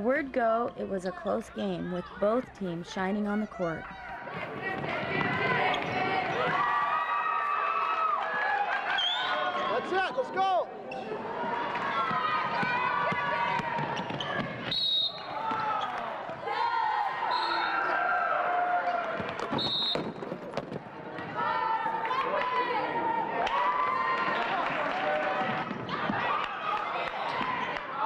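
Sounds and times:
sneaker squeaks: 4.8 - 6.2, 10.9 - 11.2, 13.9 - 16.2.

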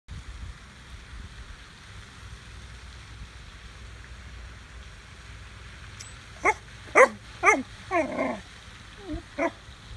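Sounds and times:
puppy barking: 6.4 - 8.4, 9.0 - 9.6.

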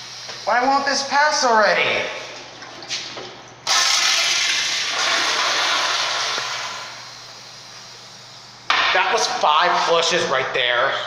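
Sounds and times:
toilet flushing: 0.5 - 7.1.

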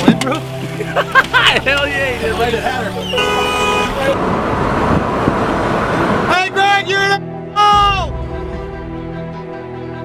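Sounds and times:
music with gliding notes: 0.0 - 4.2, 6.4 - 10.0
car cabin road and engine noise: 0.0 - 7.2.

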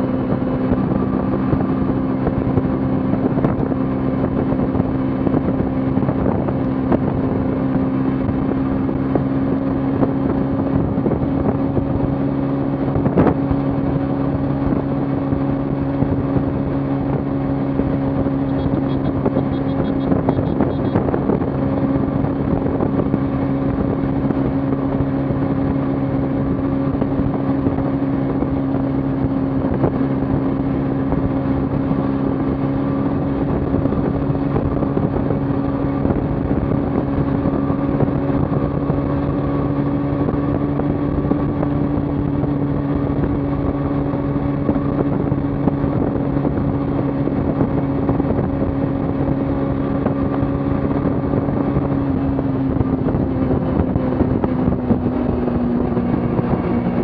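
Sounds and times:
motorcycle engine cruising: 0.0 - 57.0.

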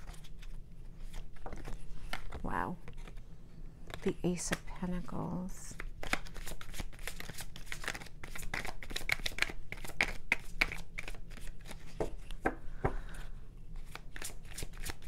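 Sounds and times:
cards being shuffled: 0.0 - 3.2, 5.7 - 12.5, 13.8 - 15.0.

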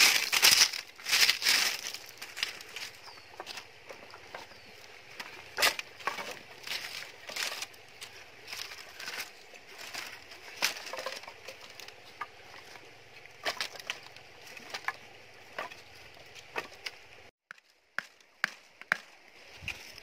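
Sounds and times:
wooden sticks clattering on pebbles: 0.0 - 20.0.

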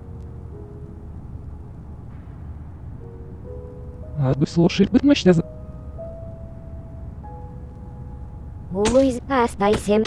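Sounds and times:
soft sustained music tones: 0.0 - 10.0
steady low rumble: 0.0 - 10.0.

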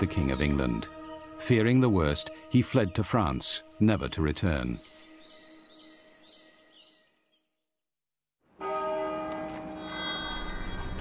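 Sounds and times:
church bells ringing: 0.0 - 2.8, 8.5 - 11.0.

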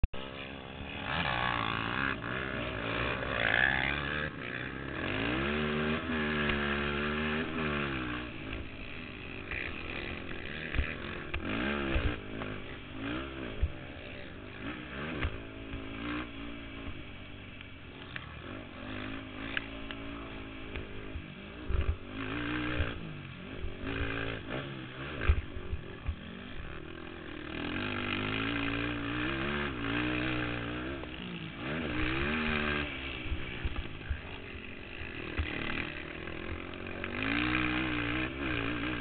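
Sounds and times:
quad bike engine revving: 0.0 - 39.0.

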